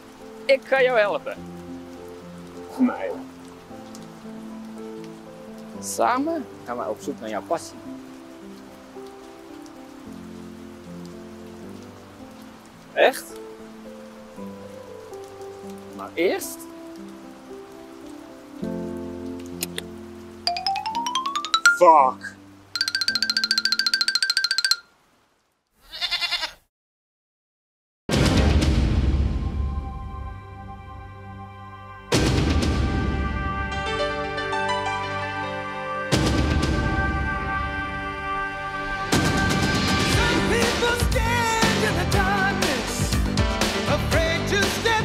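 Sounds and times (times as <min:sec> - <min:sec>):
rapidly pulsing high tone: 0:22.8 - 0:24.8.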